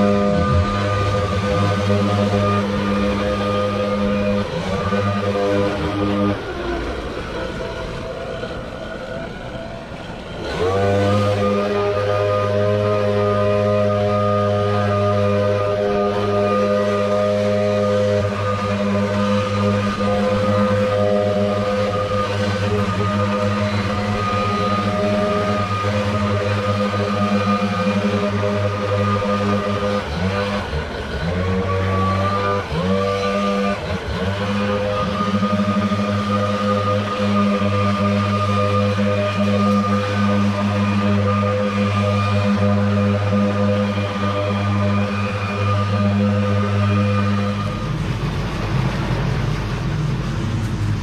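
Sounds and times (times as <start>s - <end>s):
leaf blowers running: 0.0s - 51.0s.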